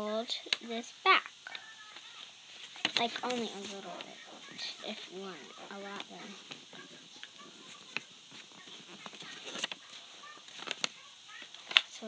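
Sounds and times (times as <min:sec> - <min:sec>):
paper rustling and crinkling: 0:01.9 - 0:11.8.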